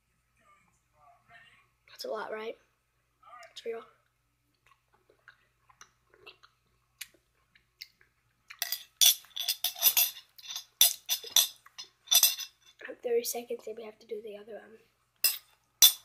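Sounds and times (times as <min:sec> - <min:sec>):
mouth and chewing sounds: 0:04.5 - 0:08.6.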